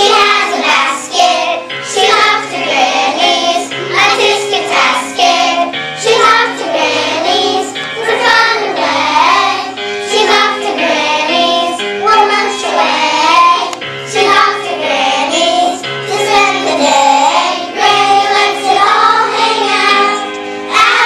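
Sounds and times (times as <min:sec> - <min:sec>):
children singing: 0:00.0 - 0:21.0
instrumental accompaniment: 0:00.0 - 0:21.0.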